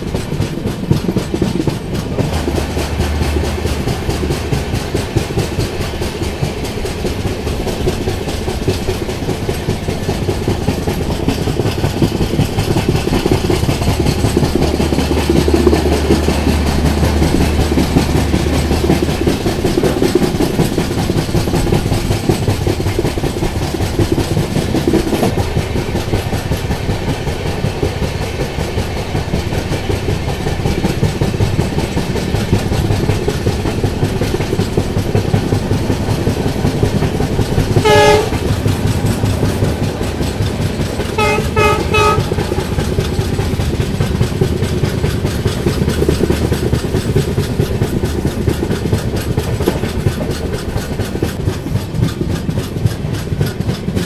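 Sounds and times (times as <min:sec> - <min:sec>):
train wheels clattering on rails: 0:00.0 - 0:54.0
locomotive horn blasts: 0:37.8 - 0:38.5, 0:41.1 - 0:42.6.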